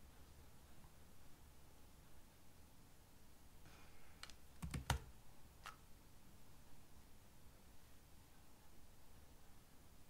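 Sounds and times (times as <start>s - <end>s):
keyboard keystroke clicks: 4.2s - 5.8s.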